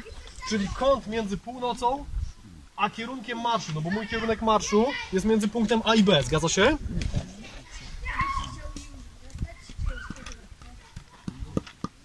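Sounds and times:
faint people talking: 0:03.6 - 0:12.0.

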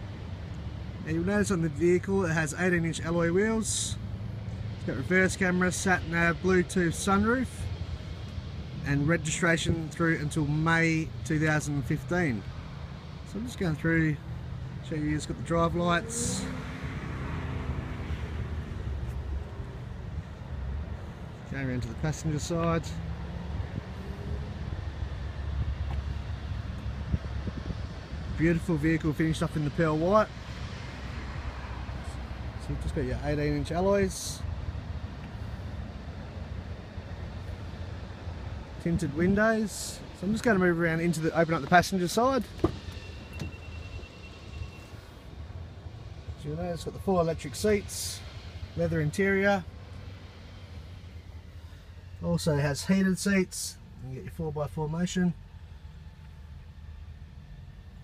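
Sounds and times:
wind rumbling on microphone: 0:23.4 - 0:28.8.

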